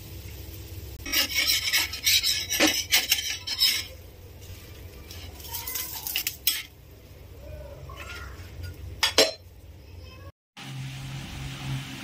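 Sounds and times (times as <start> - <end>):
metal spatula scraping griddle: 1.0 - 6.7.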